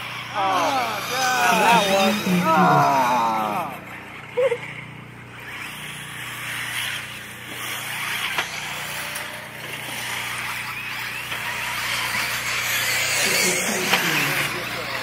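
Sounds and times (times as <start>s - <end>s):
distant rc buggy engines buzzing: 0.0s - 15.0s.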